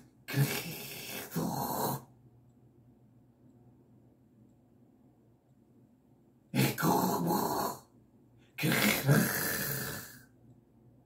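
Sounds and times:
man growling vocal: 0:00.3 - 0:02.1, 0:06.6 - 0:07.8, 0:08.6 - 0:10.3.

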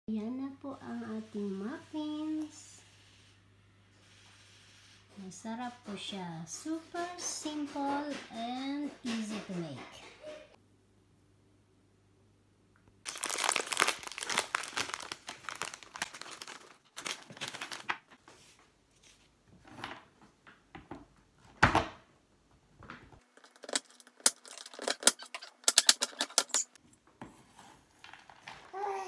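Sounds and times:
wrapper tearing and crinkling: 0:13.1 - 0:18.1.

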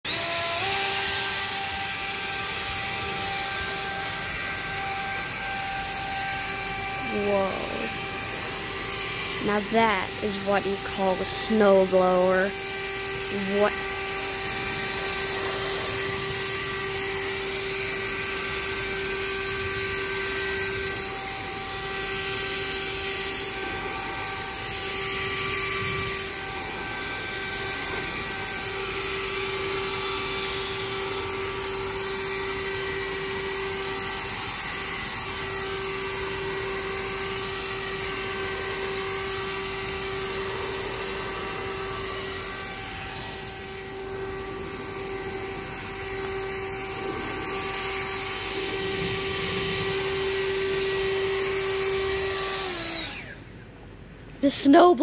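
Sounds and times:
leaf blower whine and air rush: 0:00.1 - 0:54.8.

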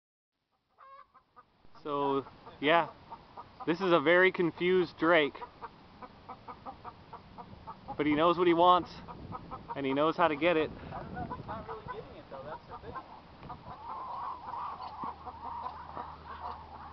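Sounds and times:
chicken clucking: 0:00.5 - 0:01.5, 0:05.3 - 0:16.9
wavering chicken call: 0:00.7 - 0:01.5, 0:12.7 - 0:16.9
man talking: 0:01.7 - 0:02.9, 0:03.6 - 0:05.4, 0:08.0 - 0:09.0, 0:09.8 - 0:13.1.

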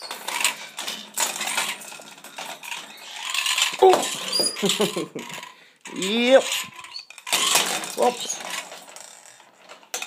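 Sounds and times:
toys rattling against wire cage: 0:00.0 - 0:10.0.

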